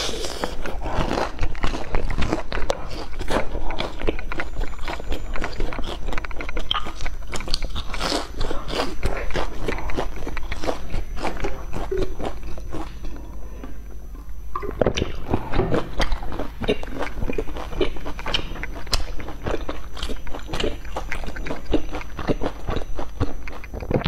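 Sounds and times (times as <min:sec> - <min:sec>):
crunchy food chewing: 0:00.0 - 0:24.0.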